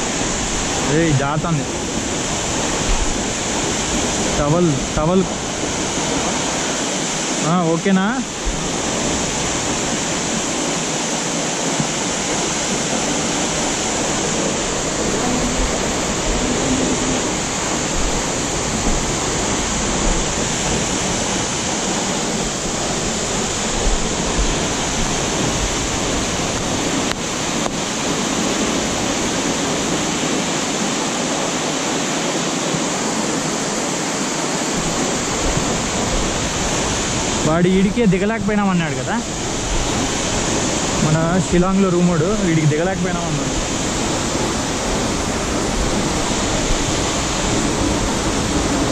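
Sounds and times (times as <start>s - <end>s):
waterfall rushing over rocks: 0.0s - 48.9s.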